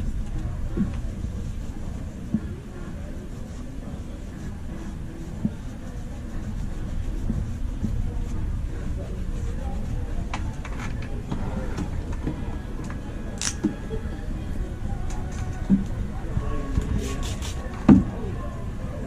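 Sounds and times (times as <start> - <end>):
faint background music: 0.0 - 19.0
low room rumble: 0.0 - 19.0.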